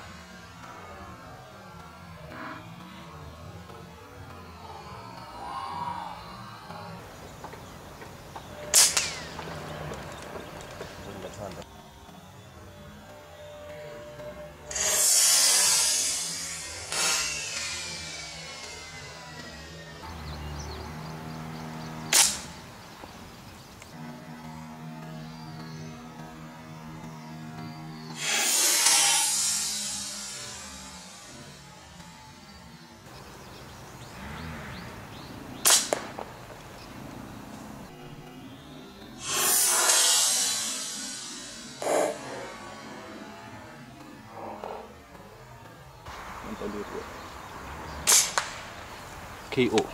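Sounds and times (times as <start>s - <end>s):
background music: 0.0s - 49.8s
air rifle shots: 8.7s - 10.1s, 22.1s - 22.6s, 35.6s - 36.8s, 48.0s - 49.2s
rushing noise: 14.1s - 21.1s, 28.0s - 38.3s, 39.0s - 49.8s.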